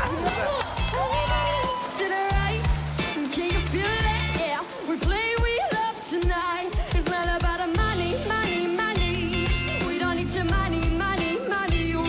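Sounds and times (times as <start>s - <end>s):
band playing bass and drums: 0.0s - 12.0s
girl singing into a microphone: 2.0s - 12.0s.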